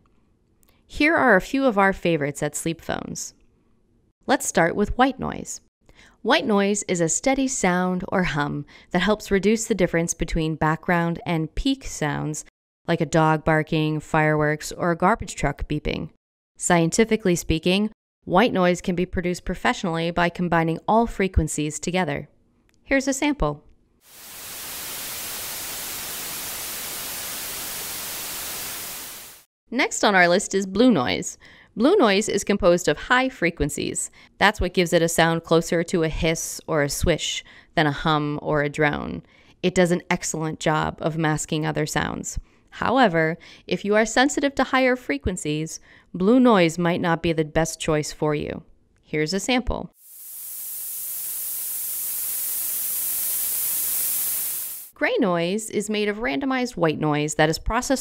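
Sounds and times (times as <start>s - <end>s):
white noise hiss: 24.1s - 29.5s, 50.0s - 55.0s.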